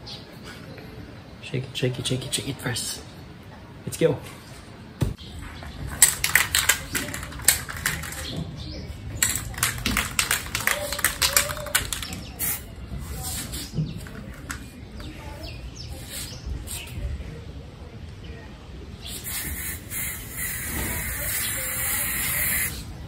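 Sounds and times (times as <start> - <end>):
birds chirping: 0.0 - 23.0
spray-paint can rattling: 5.9 - 8.4, 9.2 - 14.7, 19.2 - 22.8.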